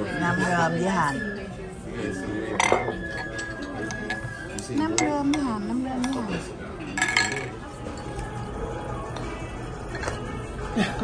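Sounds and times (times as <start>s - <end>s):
background music: 0.0s - 11.0s
murmur of voices: 0.0s - 11.0s
spoon clinking against bowl: 2.4s - 8.2s.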